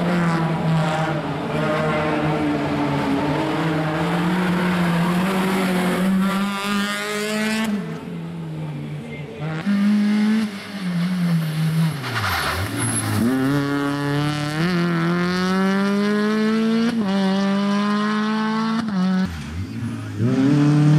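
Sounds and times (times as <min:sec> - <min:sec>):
rally car engine revving: 0:00.0 - 0:20.9.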